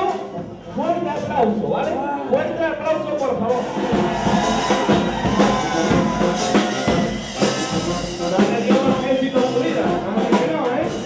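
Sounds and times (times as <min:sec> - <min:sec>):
band playing dance music: 0:00.0 - 0:11.0.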